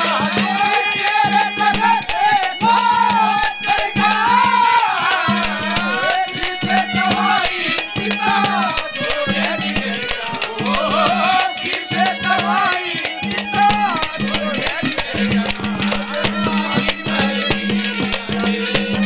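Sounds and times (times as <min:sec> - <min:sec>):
hand drum strokes: 0:00.0 - 0:19.0
harmonium: 0:00.0 - 0:19.0
ornamented folk melody: 0:00.0 - 0:19.0.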